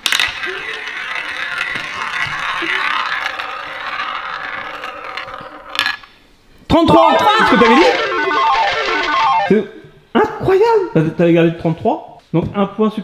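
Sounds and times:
roulette ball rattling whirr: 0.0 - 6.2, 7.0 - 9.6.

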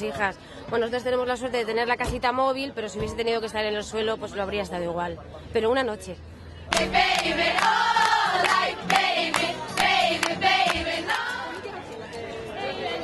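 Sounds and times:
hand claps: 6.7 - 11.3
group singing together: 6.7 - 11.7.

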